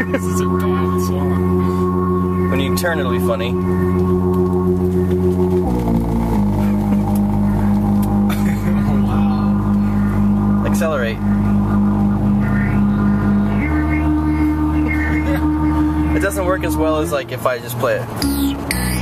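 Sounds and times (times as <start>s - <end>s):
buzzy electronic synthesizer drone: 0.0s - 19.0s.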